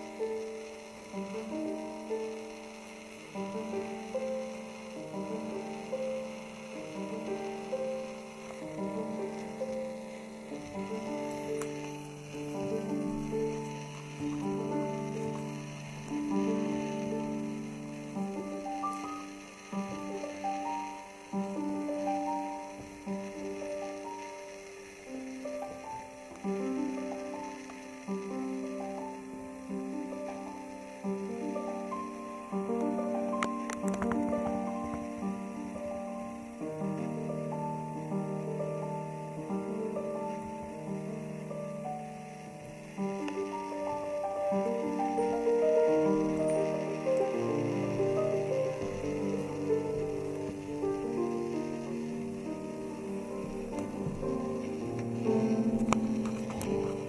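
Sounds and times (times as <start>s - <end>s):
grand piano melody: 0.0s - 57.0s.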